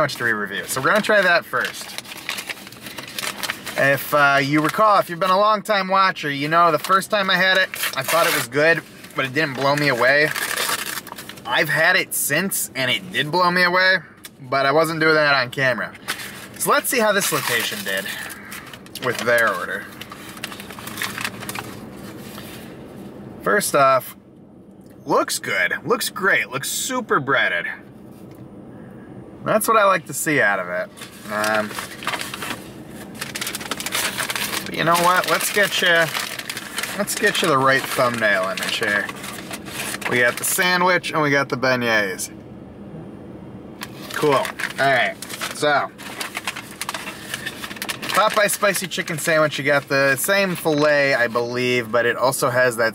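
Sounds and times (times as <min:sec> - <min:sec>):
paper wrapper crinkling: 0:00.0 - 0:05.6, 0:06.3 - 0:12.0, 0:16.0 - 0:22.7, 0:30.8 - 0:40.8, 0:43.8 - 0:51.6.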